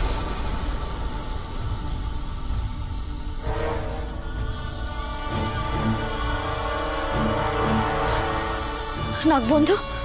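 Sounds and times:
dramatic background score: 0.0s - 10.0s.

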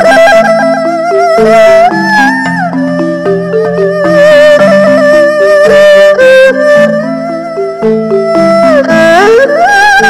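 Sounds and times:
balafon struck notes: 0.0s - 10.0s
erhu bowed notes: 0.0s - 10.0s.

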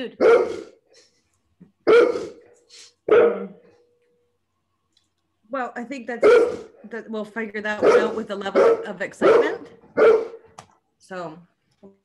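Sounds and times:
dog barking: 0.2s - 0.8s, 1.8s - 2.4s, 3.1s - 3.7s, 6.2s - 6.8s, 7.8s - 10.5s.

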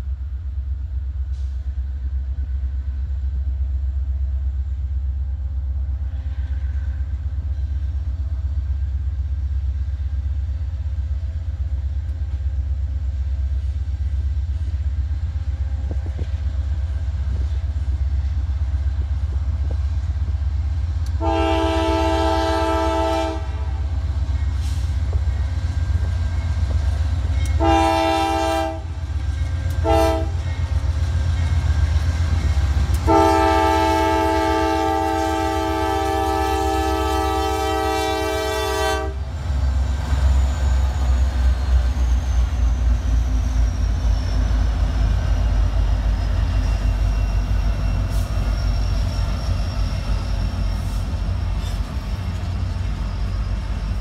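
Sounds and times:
diesel engines rumbling: 0.0s - 54.0s
train wheel noise: 0.0s - 54.0s
locomotive air horn blasts: 21.2s - 24.0s, 27.6s - 29.0s, 29.8s - 30.4s, 32.9s - 39.3s.

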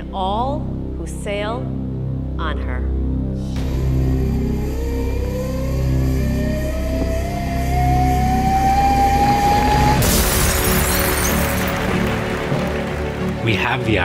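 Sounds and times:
ceremonial music: 3.6s - 14.0s
bottle smashing: 10.0s - 12.3s.

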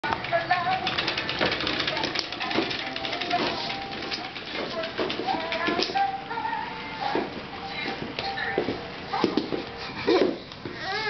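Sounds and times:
baby walker rattling on wooden floor: 0.2s - 6.0s.

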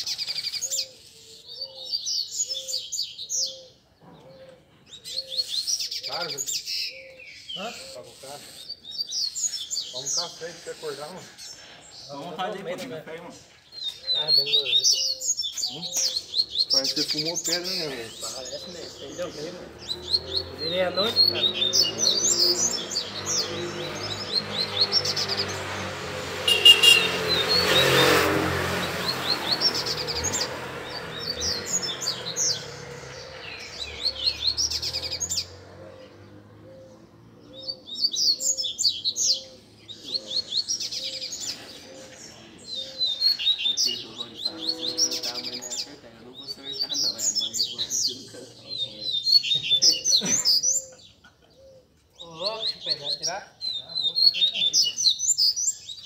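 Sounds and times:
birds singing high chirps: 0.0s - 56.0s.

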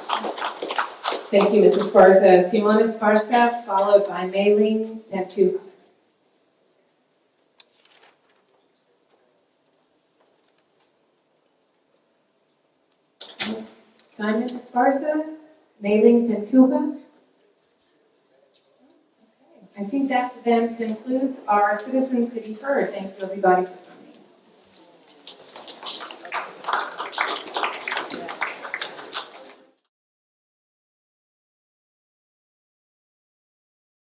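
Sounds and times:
audience applauding: 0.0s - 2.0s, 25.1s - 29.8s.

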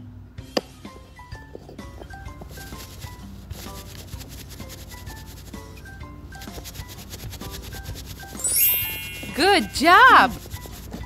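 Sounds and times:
light background music: 0.0s - 11.0s
paper rubbing on paper: 2.5s - 5.6s, 6.4s - 8.4s, 10.3s - 11.0s.

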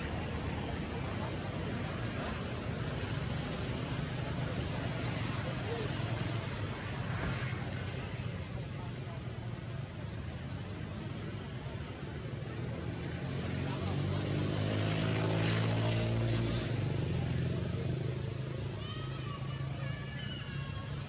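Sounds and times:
vehicle engine hum passing: 0.0s - 21.0s.

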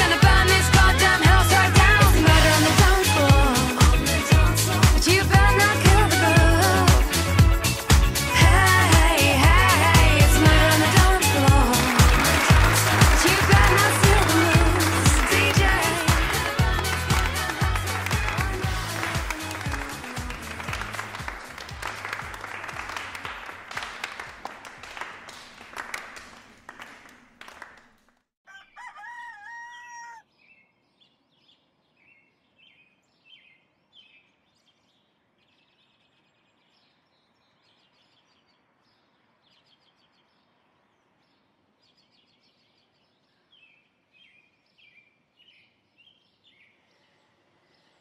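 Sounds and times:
music: 0.0s - 24.4s
rooster crowing: 28.5s - 30.3s.

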